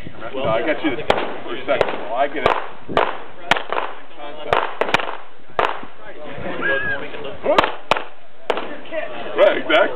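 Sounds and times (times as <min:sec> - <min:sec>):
gunshots with echo: 0:01.1 - 0:06.0, 0:07.5 - 0:08.8.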